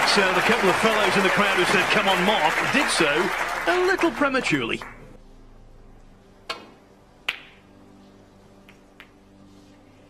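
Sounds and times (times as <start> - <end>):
low steady arena hum: 0.0 - 10.0
sharp clicks of snooker balls: 6.5 - 7.6.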